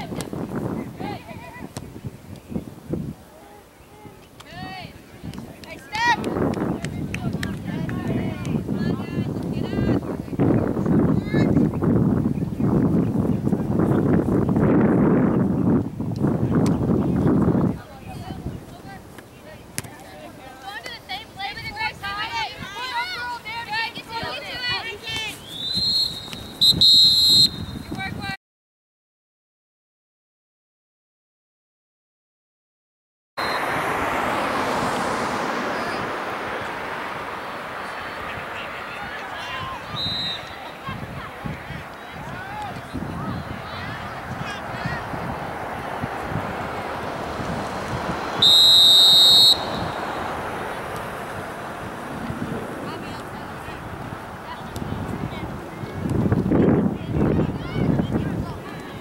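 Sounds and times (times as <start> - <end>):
wind noise: 0.0 - 3.4, 4.0 - 19.2, 21.2 - 28.4, 33.4 - 59.0
spectators' voices: 17.7 - 26.3, 33.4 - 59.0
referee's whistle blasts: 25.4 - 27.9, 33.4 - 33.8, 39.8 - 40.6, 48.4 - 50.2
players shouting: 33.4 - 56.1.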